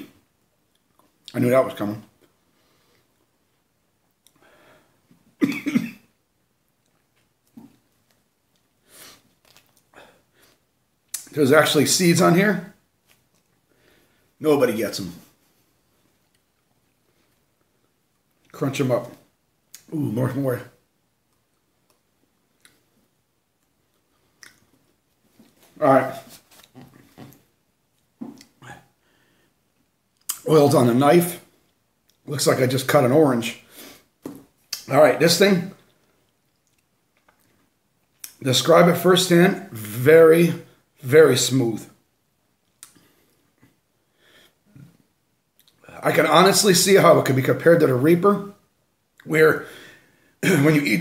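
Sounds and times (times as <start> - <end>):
man speaking: 1.3 - 2.2, 11.2 - 12.8, 14.4 - 15.4, 18.5 - 20.8, 25.7 - 27.3, 30.3 - 31.5, 32.2 - 33.6, 34.8 - 35.8, 38.4 - 41.9, 45.9 - 48.6, 49.2 - 49.7, 50.4 - 51.0
man coughing loudly: 5.4 - 6.1, 50.4 - 50.7
man chewing: 6.8 - 11.2, 36.2 - 38.3.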